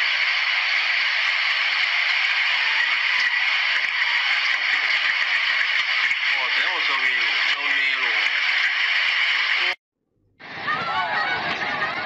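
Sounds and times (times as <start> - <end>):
floodwater rushing: 0.1 - 9.8.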